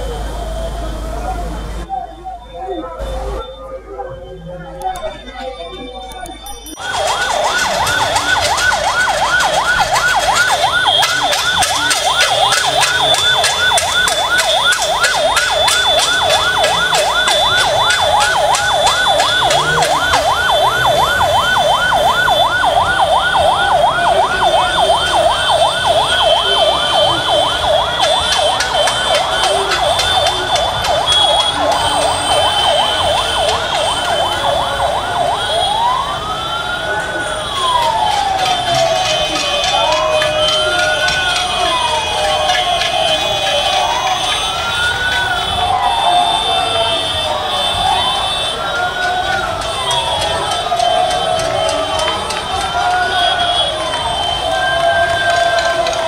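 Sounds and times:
electronic siren yelping and wailing: 0.0 - 56.0.

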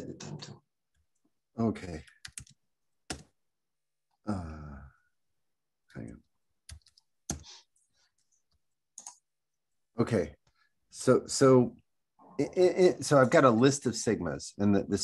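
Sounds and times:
computer keyboard keystrokes: 2.1 - 3.3, 6.7 - 7.4.

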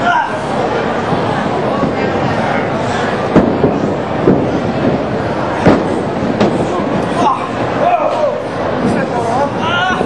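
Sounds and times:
crowd murmur in a hall: 0.0 - 10.0.

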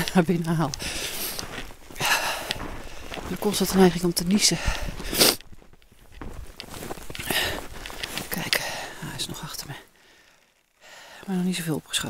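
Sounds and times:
footsteps crunching in snow: 0.0 - 10.4.

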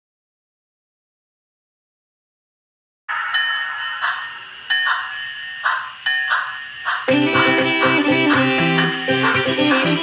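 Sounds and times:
high bell-like chimes: 3.1 - 8.0, 8.6 - 9.7.

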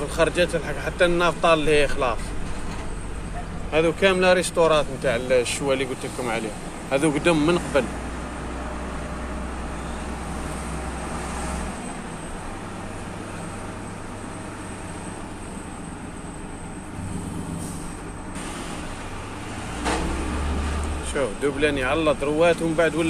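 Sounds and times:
road noise: 0.0 - 23.0.

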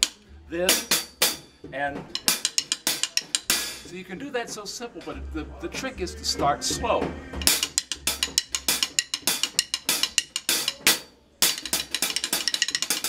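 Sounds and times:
drumstick on hi-hat cymbals: 0.0 - 13.0.

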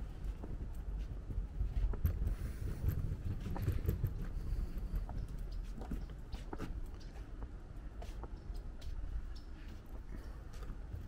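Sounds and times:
low steady rumble: 0.0 - 11.0
footsteps on wooden boards: 0.1 - 11.0.

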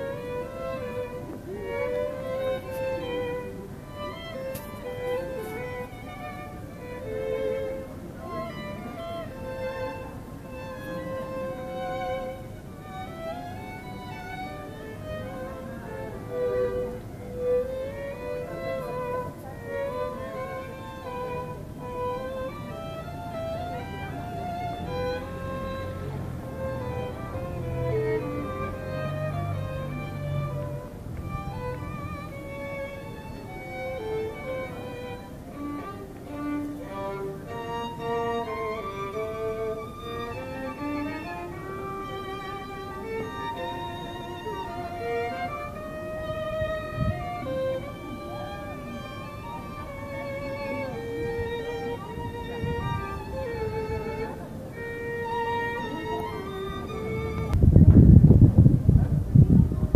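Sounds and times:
violin duet: 0.0 - 59.9.

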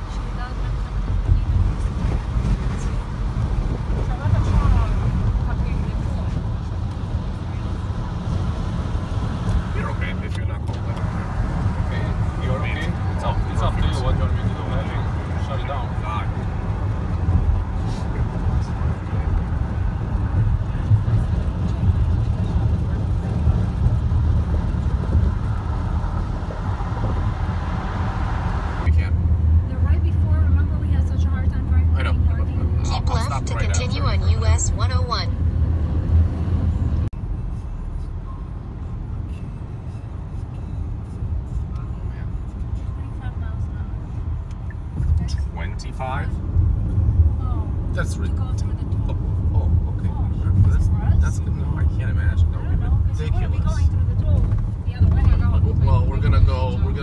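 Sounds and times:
car road noise at highway speed: 0.0 - 57.0.

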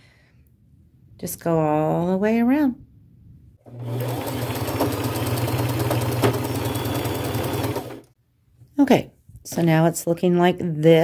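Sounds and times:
sewing machine running: 3.7 - 8.2.

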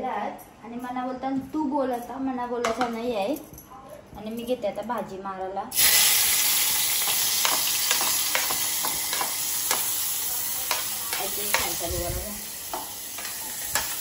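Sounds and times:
vegetables sizzling in hot oil: 5.7 - 14.0
steel spoon scraping: 12.7 - 14.0.

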